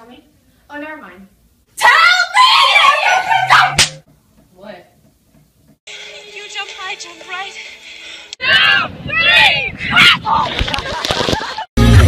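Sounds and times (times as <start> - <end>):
girl screaming: 1.8 - 3.8, 8.4 - 10.4
sharp slap: 3.8 - 4.0.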